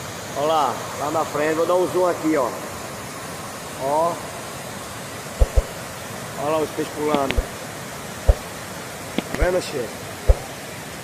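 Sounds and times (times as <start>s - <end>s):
water rushing over dam spillway: 0.0s - 11.0s
dull thump: 5.4s - 5.8s, 8.3s - 8.5s, 10.3s - 10.5s.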